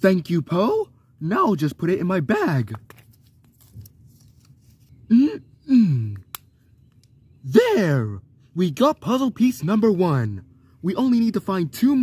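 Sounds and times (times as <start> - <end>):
paper rustling: 2.7 - 4.9.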